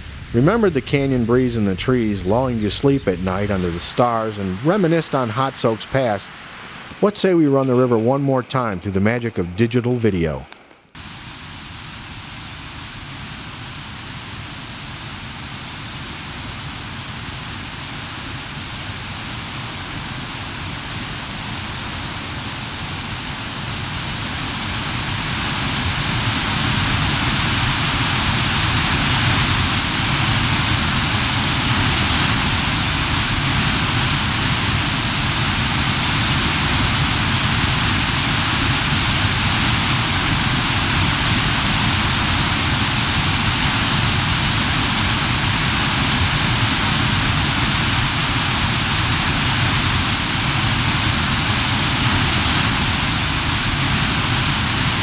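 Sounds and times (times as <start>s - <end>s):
rapids rushing and splashing: 0.0s - 7.8s, 11.0s - 55.0s.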